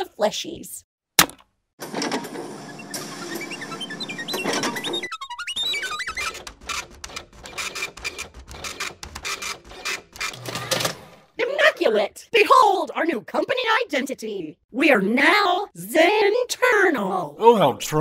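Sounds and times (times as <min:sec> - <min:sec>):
machine clicking rapidly: 0:06.2 - 0:10.9.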